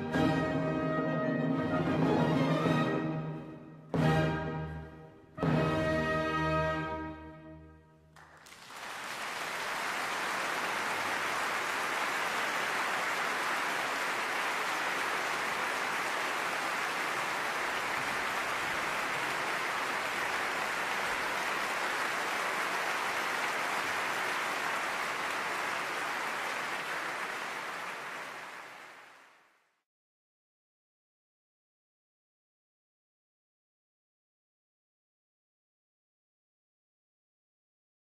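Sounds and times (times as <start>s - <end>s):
audience applause: 8.2s - 29.5s.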